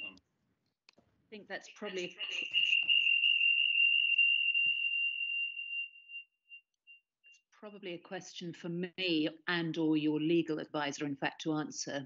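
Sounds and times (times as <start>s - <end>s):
person speaking: 1.4s - 3.0s
high-pitched ringing tone: 1.9s - 7.5s.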